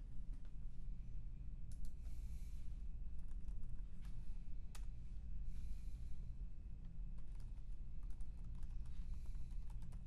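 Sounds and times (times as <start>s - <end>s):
low steady hum: 0.0s - 10.0s
keyboard keystrokes and clicks: 3.2s - 4.9s, 7.2s - 10.0s.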